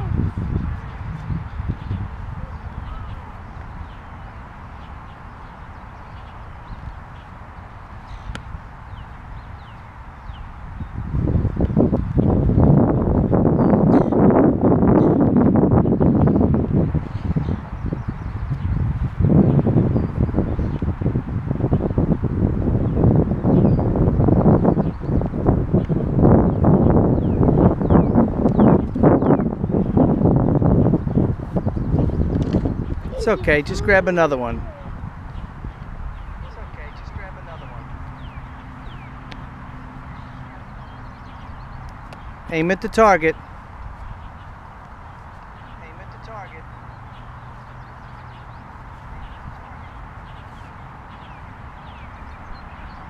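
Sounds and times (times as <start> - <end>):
wind buffeting microphone: 0.0 - 53.0.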